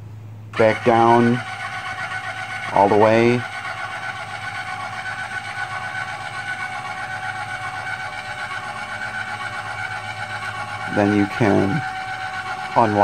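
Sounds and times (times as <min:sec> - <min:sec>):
electric jack motor whining: 0:00.5 - 0:13.0.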